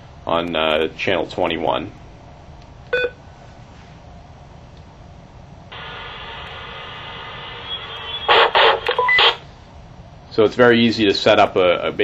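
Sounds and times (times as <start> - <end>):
radio speaker hiss and hum: 5.7 - 9.5
loud short radio bursts: 5.8 - 9.4
radio key beep: 7.6 - 9.4.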